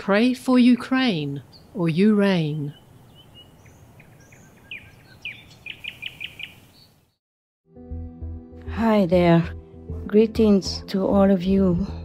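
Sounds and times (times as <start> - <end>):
birds chirping: 0.6 - 7.2
soft music: 7.7 - 12.0.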